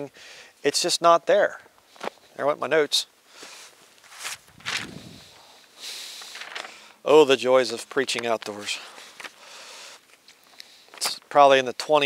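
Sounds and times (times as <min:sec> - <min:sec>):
footsteps crunching on snow: 0:03.4 - 0:06.7.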